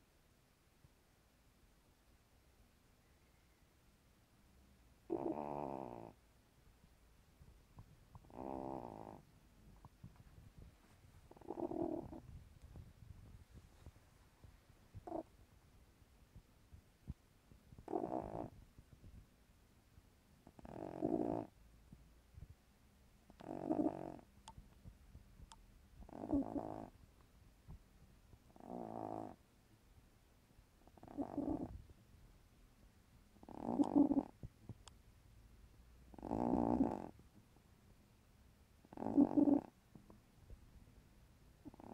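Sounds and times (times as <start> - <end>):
cat snoring: 5.0 - 6.2, 8.1 - 9.3, 11.3 - 12.3, 15.0 - 15.3, 17.8 - 18.6, 20.4 - 21.6, 23.3 - 24.3, 26.0 - 26.9, 28.5 - 29.4, 30.8 - 31.8, 33.4 - 34.4, 36.1 - 37.2, 38.8 - 39.8, 41.6 - 41.9.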